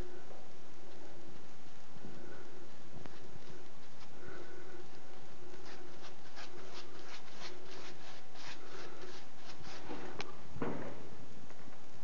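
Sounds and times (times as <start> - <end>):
brush scrubbing plaster wall: 2.1 - 10.2
heavy knock: 9.9 - 11.1.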